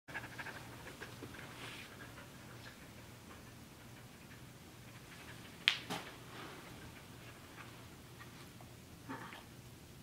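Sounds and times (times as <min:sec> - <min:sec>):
dog panting: 0:00.1 - 0:08.6
low steady hum: 0:00.1 - 0:10.0.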